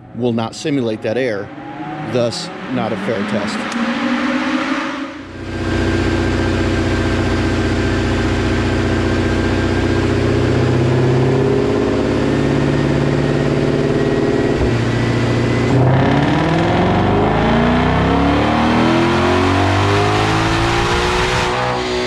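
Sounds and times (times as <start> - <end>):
thin whine: 0.2 - 9.9
car engine revving on dyno: 1.2 - 22.0.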